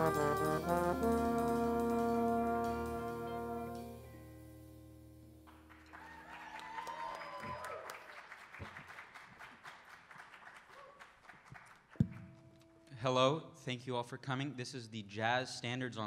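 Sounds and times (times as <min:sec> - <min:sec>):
jazz ensemble chord: 0:00.0 - 0:05.4
audience applauding: 0:05.4 - 0:12.6.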